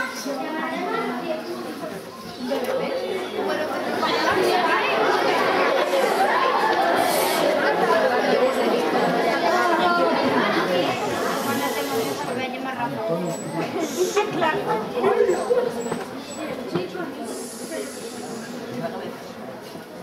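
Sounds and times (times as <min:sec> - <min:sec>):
children chattering in a hall: 0:00.0 - 0:20.0.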